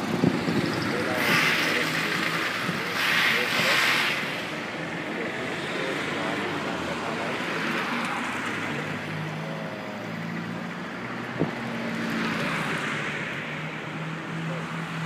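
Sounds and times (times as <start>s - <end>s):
road traffic hum: 0.0s - 15.0s.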